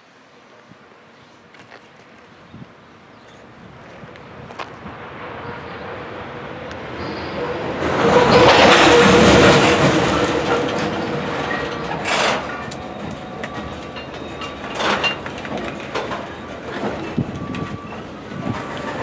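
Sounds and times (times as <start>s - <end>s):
train wheels clattering on rails: 6.7s - 19.0s.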